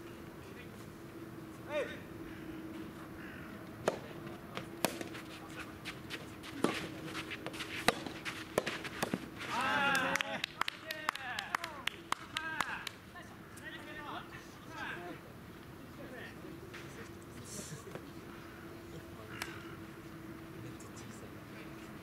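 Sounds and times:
person shouting: 0:09.5 - 0:10.4.

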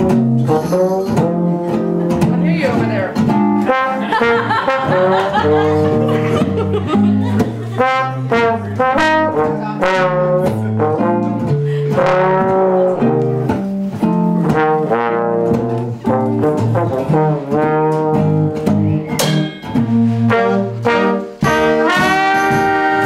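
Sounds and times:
guitar chords: 0:00.0 - 0:23.0
jazz trombone melody: 0:00.0 - 0:23.0.

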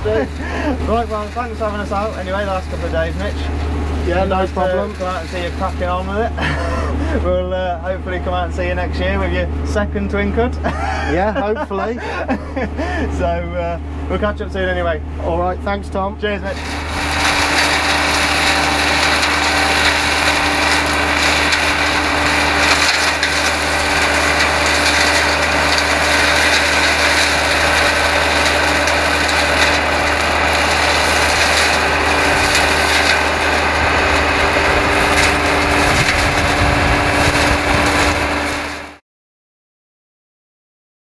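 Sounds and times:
tractor engine under load: 0:00.0 - 0:10.6, 0:11.3 - 0:39.0.

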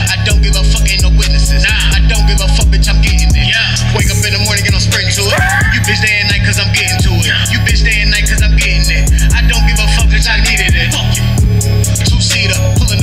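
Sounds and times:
deep bass notes: 0:00.0 - 0:13.0
pitch-bending vocal: 0:04.9 - 0:07.6.

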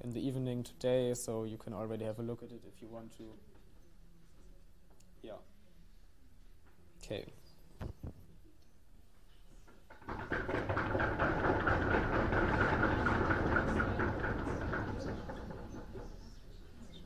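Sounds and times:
audience knocks and rustles: 0:07.7 - 0:08.4, 0:09.1 - 0:17.0.

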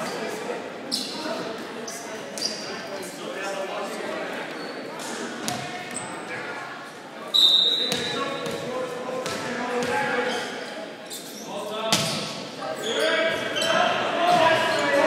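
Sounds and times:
voices echoing in a gym: 0:00.0 - 0:15.0
referee's whistle blast: 0:07.3 - 0:08.2.

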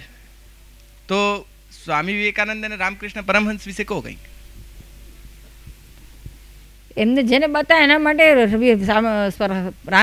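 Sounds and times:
low electrical hum: 0:00.0 - 0:10.0
faint low thumps: 0:03.3 - 0:07.2.

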